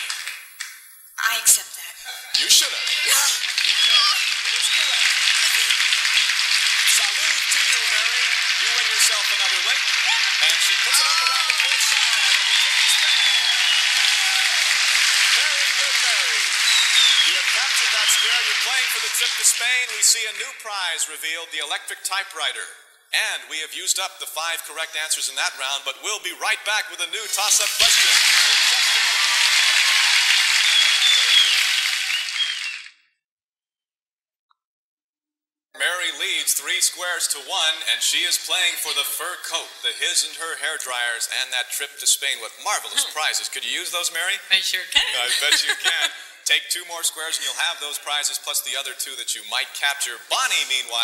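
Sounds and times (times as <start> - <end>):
studio audience applauding: 0.0 - 0.6, 2.3 - 21.4, 27.3 - 33.0, 35.8 - 41.2, 42.7 - 44.4, 45.0 - 46.3, 47.0 - 48.8, 50.1 - 51.0.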